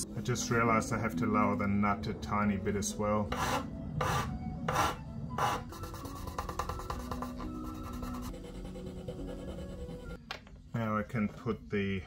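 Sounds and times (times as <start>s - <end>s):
background music with held notes: 0.0s - 10.7s.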